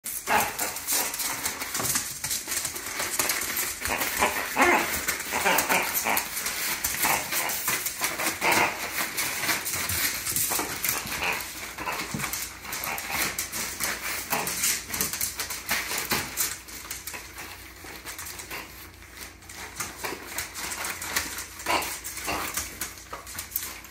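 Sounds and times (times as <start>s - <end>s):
dog tearing at a present: 0.0s - 23.9s
wrapping paper rustling: 0.1s - 23.9s.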